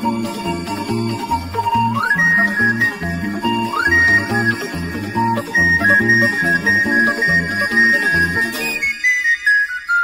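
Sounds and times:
panpipe melody: 0:00.0 - 0:10.0.

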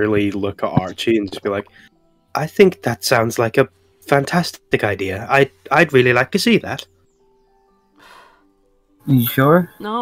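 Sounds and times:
faint sustained background music: 0:00.0 - 0:10.0.

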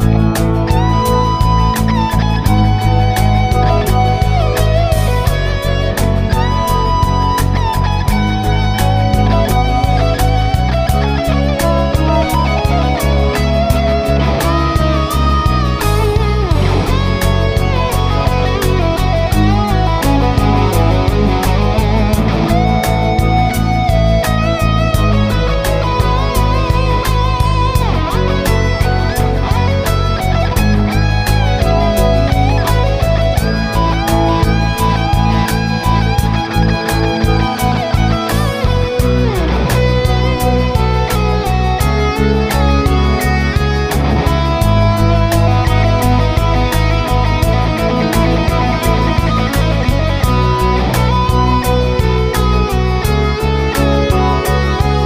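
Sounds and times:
bass: 0:00.0 - 0:55.0
electric guitar lead line: 0:00.0 - 0:55.0.

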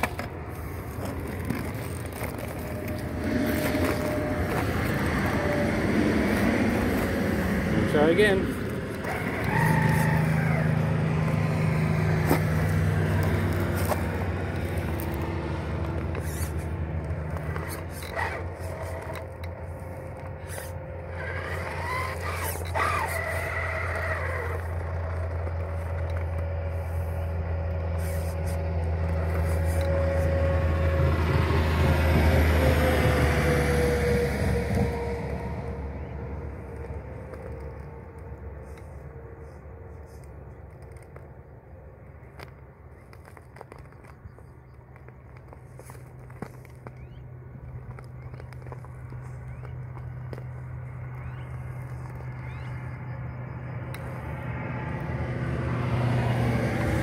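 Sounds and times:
low hum of road traffic: 0:00.0 - 0:57.0
rc car driving over gravel: 0:00.0 - 0:57.0.

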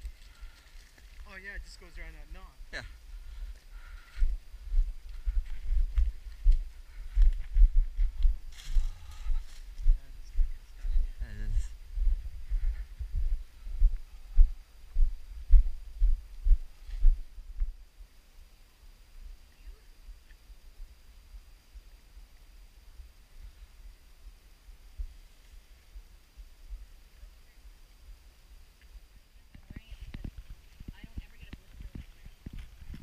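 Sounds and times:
footsteps on dirt trail: 0:00.0 - 0:02.1, 0:02.8 - 0:17.8, 0:29.7 - 0:33.0
faint outdoor background: 0:00.0 - 0:33.0.

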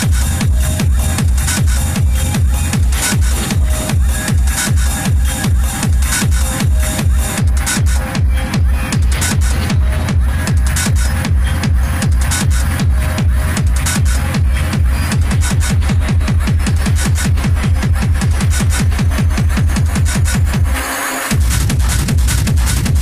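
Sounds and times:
fast kick drum: 0:00.0 - 0:23.0
hard techno music: 0:00.0 - 0:23.0.

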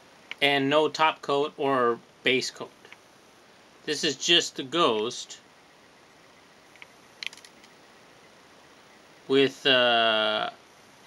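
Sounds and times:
plastic model clicking: 0:06.8 - 0:07.7.

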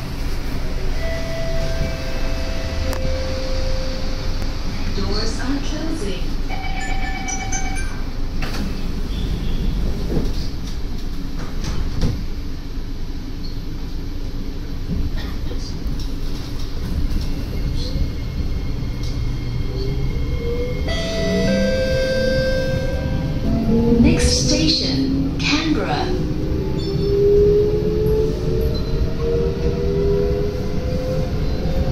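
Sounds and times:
train wheels rumbling on track: 0:00.0 - 0:31.9.

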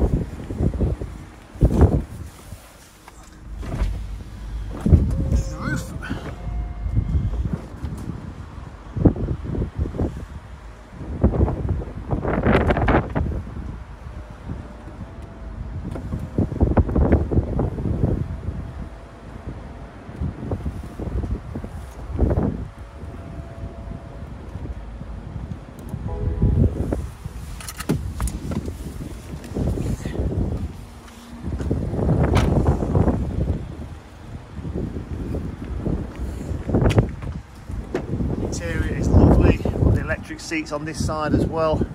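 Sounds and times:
wind gusts on microphone: 0:00.0 - 0:41.9
roof mechanism whine: 0:00.2 - 0:09.1.

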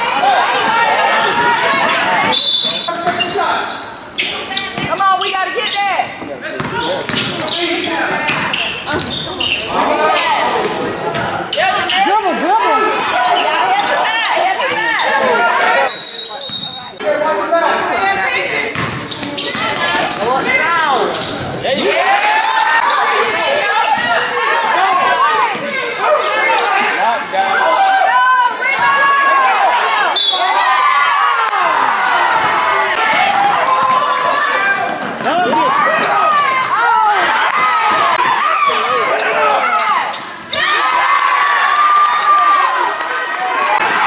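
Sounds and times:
voices calling out: 0:00.0 - 0:44.0
sneakers squeaking on floor: 0:00.6 - 0:12.4, 0:13.2 - 0:21.9, 0:22.8 - 0:27.6, 0:30.1 - 0:30.6, 0:32.4 - 0:37.0.

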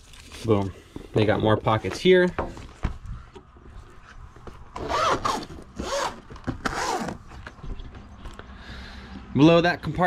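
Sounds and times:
zipper being pulled: 0:04.8 - 0:07.2.

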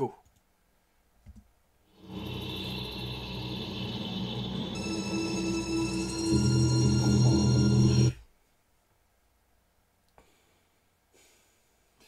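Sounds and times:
high sustained tones: 0:02.0 - 0:08.2
low noisy drone: 0:02.0 - 0:08.2.

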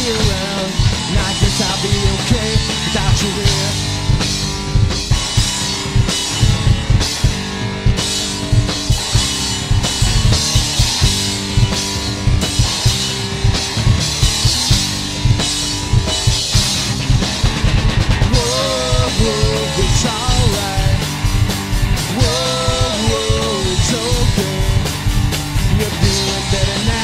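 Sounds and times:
bass guitar: 0:00.0 - 0:27.0
drum kit: 0:00.0 - 0:27.0
electric guitar: 0:00.0 - 0:27.0.

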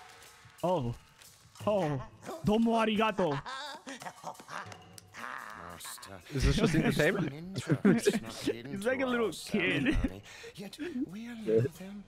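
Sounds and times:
man laughing low: 0:03.2 - 0:06.0, 0:09.7 - 0:10.2.

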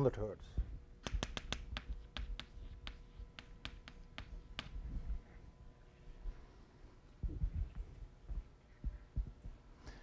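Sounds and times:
chalk clicking on blackboard: 0:01.0 - 0:04.8.

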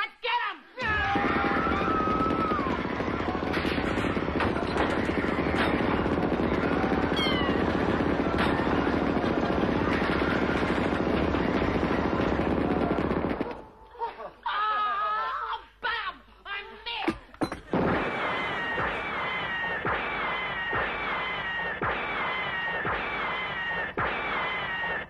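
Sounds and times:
loud steady din: 0:00.9 - 0:13.6
woman screaming: 0:14.4 - 0:15.7.

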